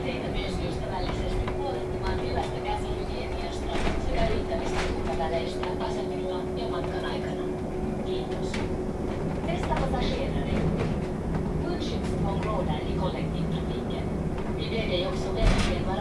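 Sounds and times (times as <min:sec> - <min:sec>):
bus road rumble and hum: 0:00.0 - 0:16.0.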